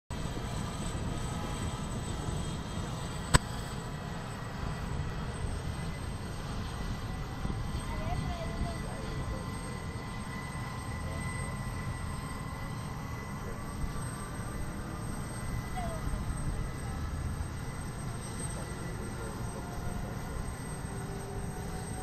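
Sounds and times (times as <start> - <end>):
helicopter engines running: 0.1 - 22.0.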